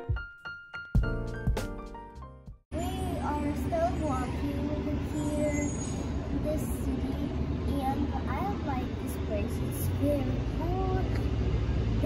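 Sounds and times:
girl speaking: 2.7 - 11.4
low background rumble: 2.8 - 12.0.

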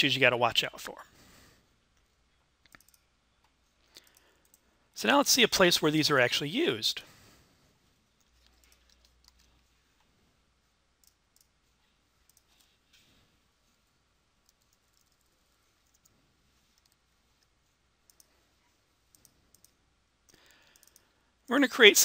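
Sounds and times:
computer mouse clicks: 2.0 - 4.6, 8.2 - 9.6, 11.0 - 11.6, 12.3 - 12.8, 14.4 - 16.1, 16.7 - 18.4, 19.1 - 21.1.

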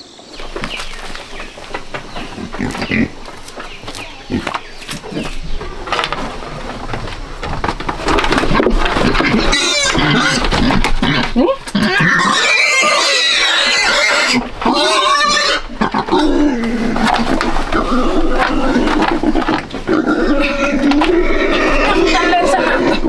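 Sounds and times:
pigs squealing loudly: 8.4 - 23.0.

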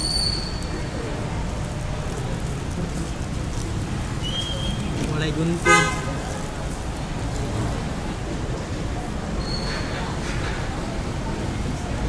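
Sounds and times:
busy food court rumble: 0.0 - 12.0.

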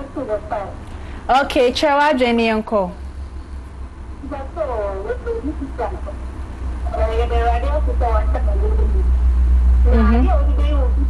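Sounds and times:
loud steady low hum: 0.0 - 11.0
person talking: 4.2 - 6.2, 9.9 - 11.0.

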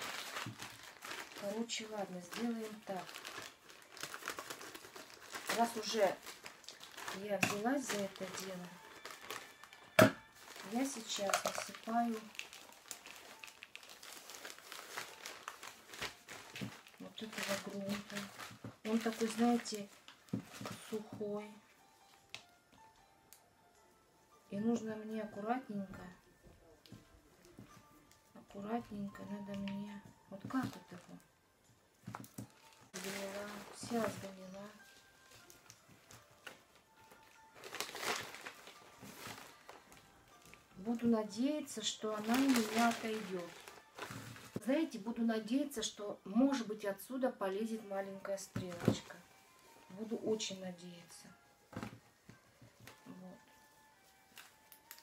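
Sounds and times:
plastic bag crinkling: 0.0 - 21.1, 32.0 - 45.0, 52.8 - 55.0
potting mix rustling and crackling: 0.0 - 22.5, 24.5 - 31.2, 32.0 - 45.8
faint background music: 0.0 - 55.0.

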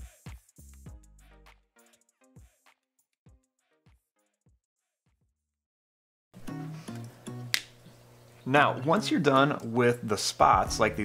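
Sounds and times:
quiet background music: 6.4 - 11.0
sharp snap-like click: 6.9 - 7.8.

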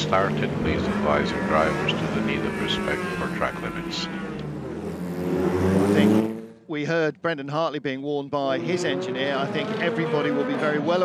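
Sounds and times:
race car engine accelerating: 0.0 - 6.6, 8.6 - 11.0.

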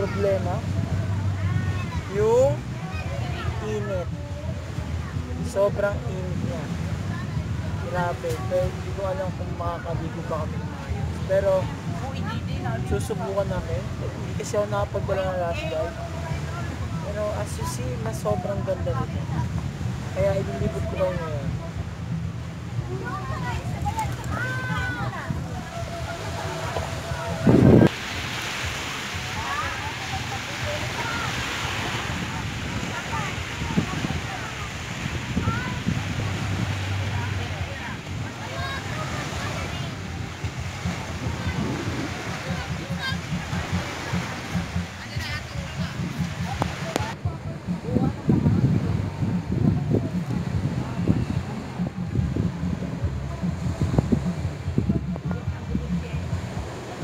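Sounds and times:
faint sea surf: 0.0 - 57.0
small waves washing on beach: 0.0 - 57.0
wind buffeting microphone: 0.0 - 57.0.

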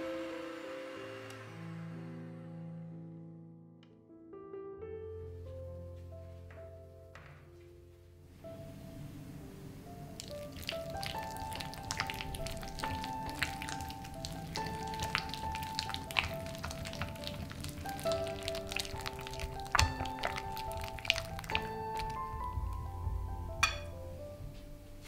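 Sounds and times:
background music: 5.1 - 25.0.

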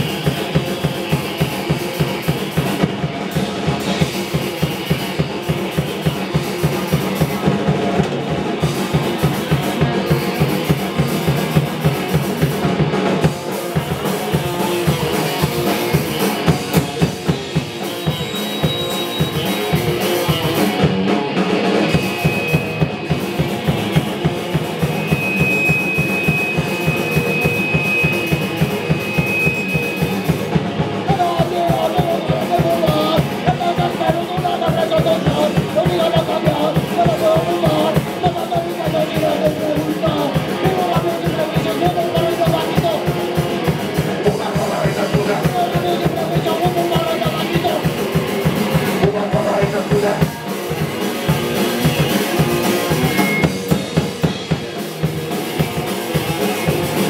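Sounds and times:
fast drum-kit beat: 0.0 - 57.0
punk band playing live: 0.0 - 57.0
high steady tone: 13.9 - 33.8, 44.3 - 56.9.

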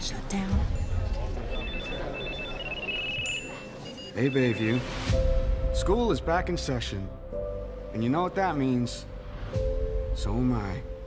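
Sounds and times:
phone ringing with electronic beeps: 1.4 - 5.1.

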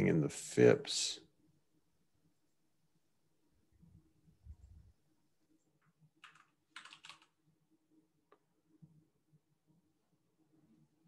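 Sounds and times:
typing on computer keyboard: 6.2 - 7.4.

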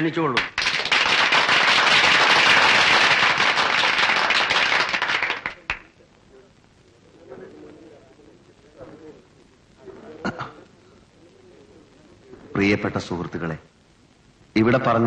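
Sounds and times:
firecrackers crackling: 0.4 - 12.6.

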